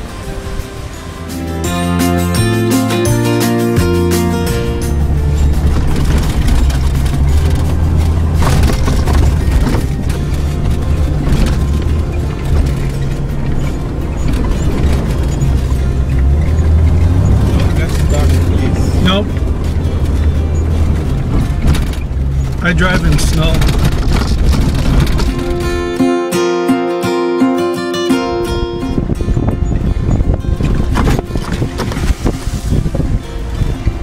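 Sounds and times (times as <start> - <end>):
jeep engine and road rumble: 0.0 - 34.0.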